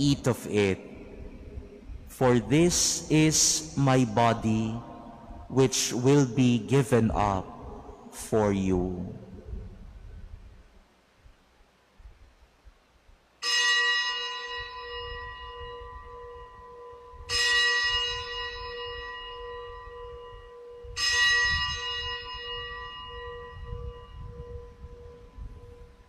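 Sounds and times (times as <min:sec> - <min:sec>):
bell ringing with pulsing hum: 0:13.4 - 0:26.0.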